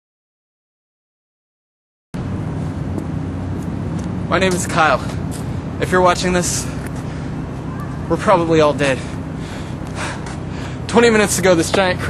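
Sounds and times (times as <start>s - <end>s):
low background hum: 2.2s - 12.0s
person drawing breath: 6.6s - 7.4s, 8.9s - 10.9s.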